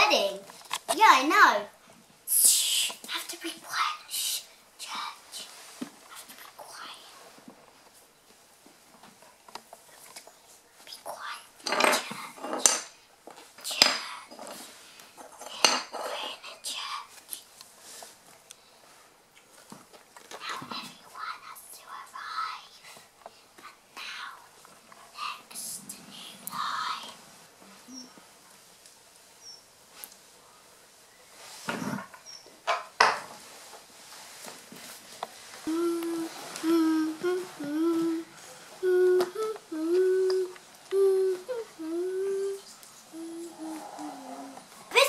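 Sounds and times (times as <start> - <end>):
child whispering: 2.3 - 7.3, 10.9 - 12.5, 13.6 - 14.4, 15.4 - 17.5, 20.4 - 22.9, 23.6 - 24.5, 25.1 - 28.2, 35.6 - 45.0
girl humming a tune: 35.6 - 44.7.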